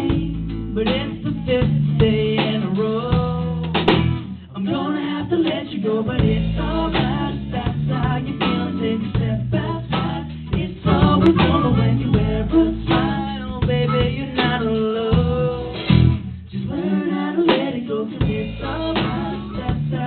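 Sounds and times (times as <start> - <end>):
drums: 0.0 - 20.0
man singing: 0.0 - 20.0.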